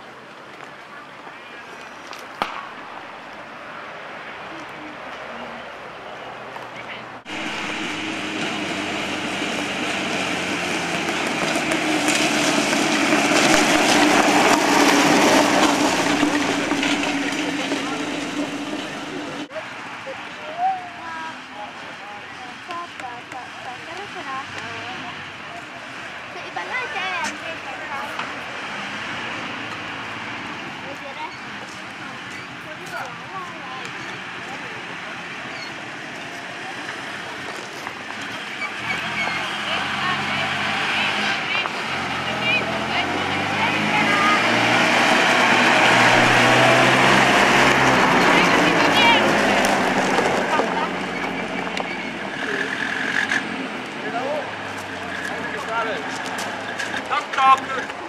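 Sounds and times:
people talking: 0.0s - 2.6s, 3.4s - 8.6s, 9.7s - 29.4s, 30.7s - 58.0s
armoured car engine running: 7.1s - 19.6s, 33.8s - 58.0s.

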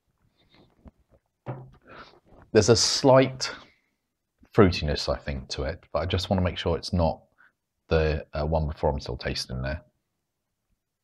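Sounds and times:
glass set down on wooden table: 1.5s - 1.8s.

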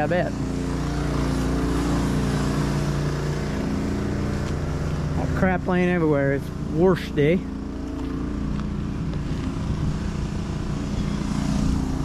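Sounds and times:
small engine running: 0.0s - 12.0s.

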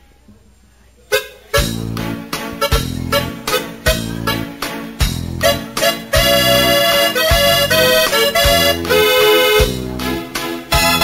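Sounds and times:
band playing instrumental: 1.1s - 11.0s.

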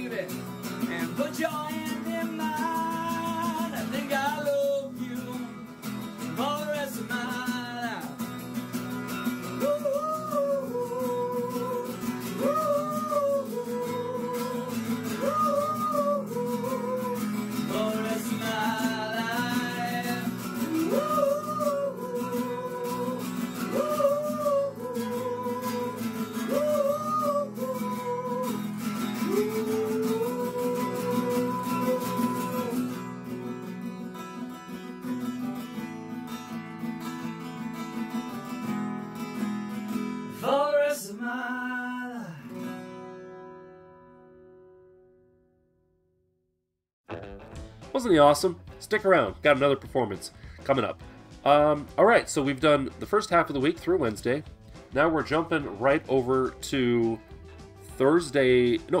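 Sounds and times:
strummed guitar chords: 0.0s - 45.2s, 47.1s - 59.0s
man singing: 0.8s - 8.2s, 9.4s - 33.2s, 40.4s - 42.5s.

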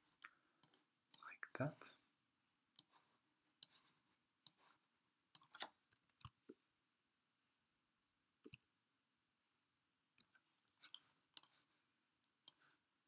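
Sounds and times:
computer mouse clicks: 0.2s - 1.3s, 5.3s - 6.5s, 12.4s - 12.6s.

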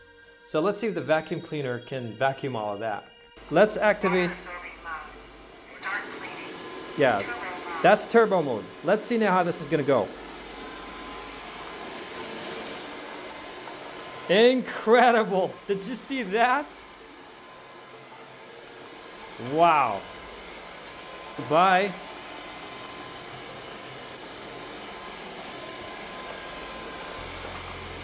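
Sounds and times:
vacuum suction motor whining: 3.4s - 28.0s.

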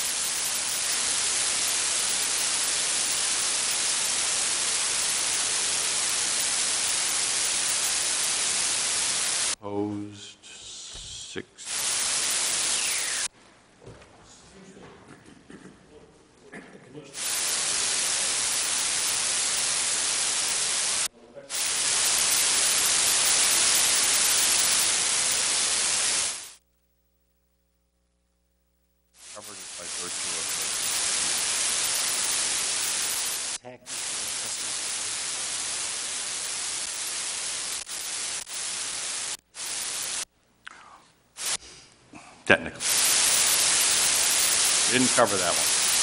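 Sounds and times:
loud static hiss: 0.0s - 9.8s, 10.4s - 13.4s, 17.0s - 40.6s, 41.2s - 41.7s, 42.5s - 46.0s.

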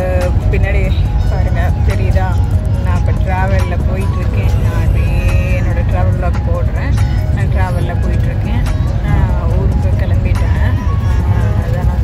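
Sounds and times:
passenger train rumble: 0.0s - 12.0s
woman talking: 0.0s - 12.0s.

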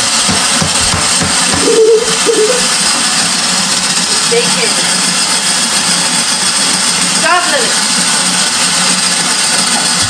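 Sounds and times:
snow cone maker shaving ice: 0.0s - 10.0s.

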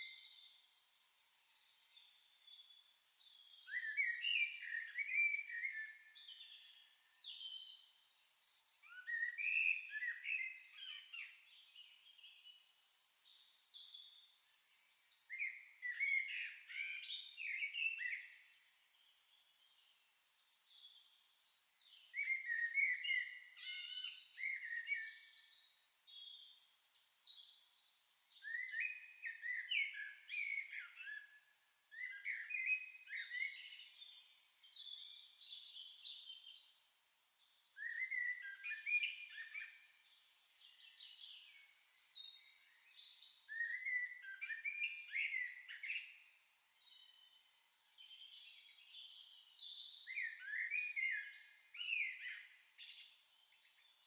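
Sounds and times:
songbird singing: 0.0s - 54.0s.

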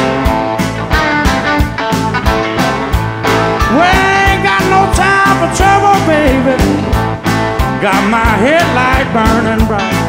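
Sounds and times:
blues band playing: 0.0s - 10.0s
person singing: 3.7s - 7.0s, 7.8s - 10.0s.

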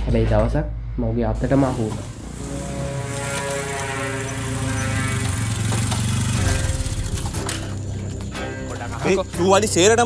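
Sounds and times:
motorcycle engine running: 2.2s - 10.0s.

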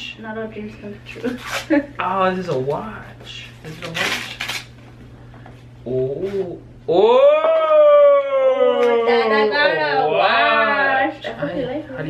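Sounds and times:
gift box scraping rustle: 3.7s - 4.7s.

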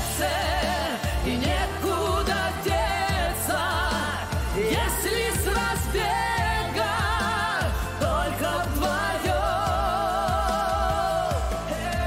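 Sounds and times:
bass line: 0.0s - 12.0s
drum beats: 0.0s - 12.0s.

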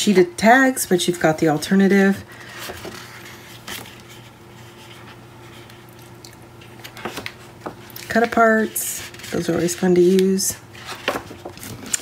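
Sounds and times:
faint steady hum: 0.0s - 12.0s
paper rustling: 2.4s - 5.9s, 6.6s - 12.0s.

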